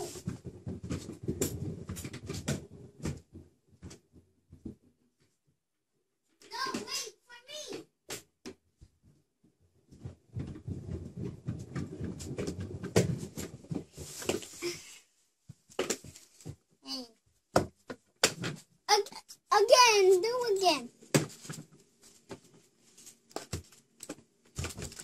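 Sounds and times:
scooter wheels rolling on floor: 0.0 - 4.9, 9.0 - 16.7, 19.6 - 25.0.

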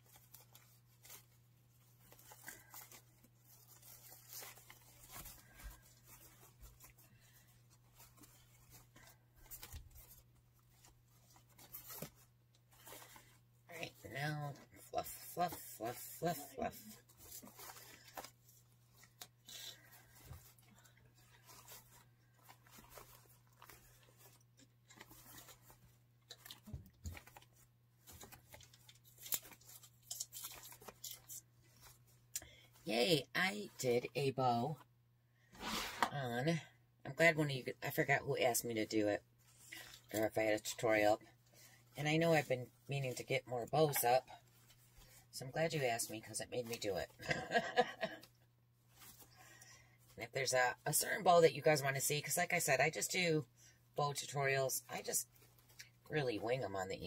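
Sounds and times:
fabric ribbon rustling and crinkling: 0.0 - 34.9, 35.5 - 57.0
person speaking: 13.7 - 17.9, 32.4 - 34.8, 35.6 - 39.2, 39.8 - 41.3, 42.0 - 44.4, 45.3 - 48.2, 50.2 - 55.2, 56.1 - 57.0.

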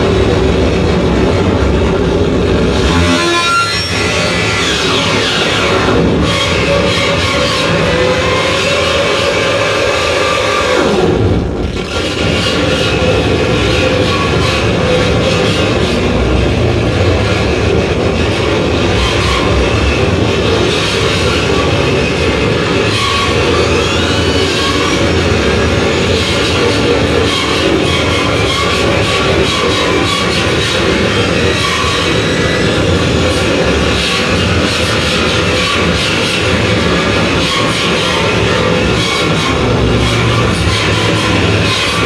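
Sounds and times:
distorted electronic noise: 0.0 - 42.0.

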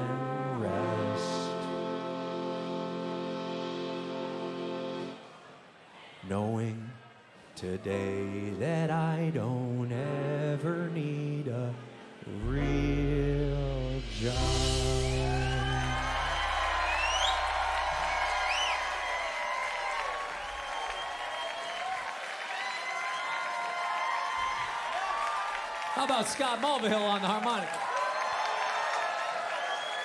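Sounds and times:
person singing: 0.0 - 5.1, 7.6 - 19.2
funk band playing: 0.0 - 5.2, 12.4 - 20.3
low bass note: 12.4 - 20.2
crowd cheering and whistling: 14.2 - 30.0
audience applauding: 15.0 - 30.0.

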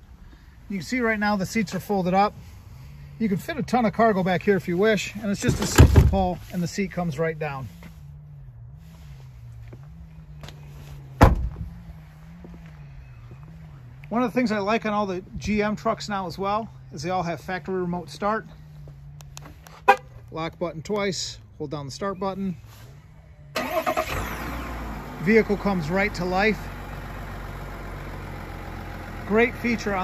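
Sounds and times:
truck door thud: 5.4 - 6.4, 11.2 - 11.7
diesel engine starting and idling: 22.4 - 30.0.

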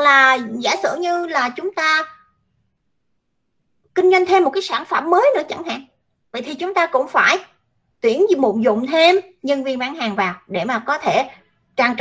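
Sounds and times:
woman speaking: 0.0 - 2.2, 4.0 - 12.0.

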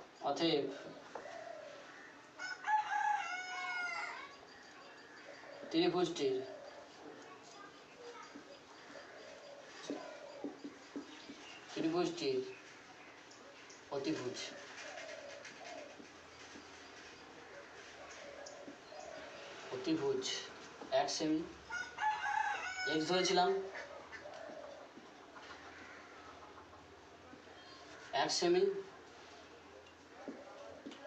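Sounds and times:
rooster crowing: 1.2 - 4.4, 21.7 - 24.8
bird calling faintly: 3.5 - 20.8.

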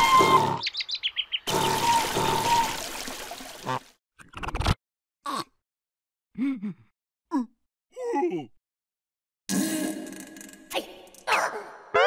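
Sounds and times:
cartoon character grunt and groan: 5.2 - 5.6, 6.3 - 8.6.

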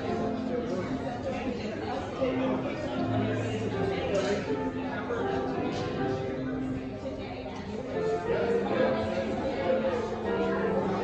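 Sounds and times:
crowd chatting: 0.0 - 11.0.

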